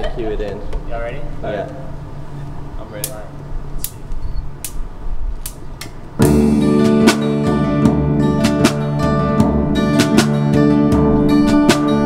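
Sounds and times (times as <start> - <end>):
drums played with rods: 6.2 - 12.0
other guitars: 6.2 - 12.0
strummed acoustic guitar: 6.2 - 12.0.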